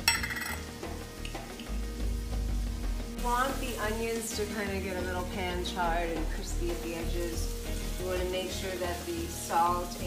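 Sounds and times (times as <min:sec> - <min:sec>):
metal clinking against pan: 0:00.0 - 0:00.6
vegetables frying in pan: 0:00.6 - 0:10.0.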